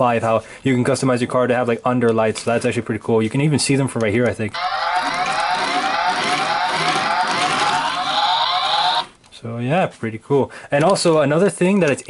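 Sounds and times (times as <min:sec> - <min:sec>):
electronic police siren wail: 0:04.6 - 0:09.2.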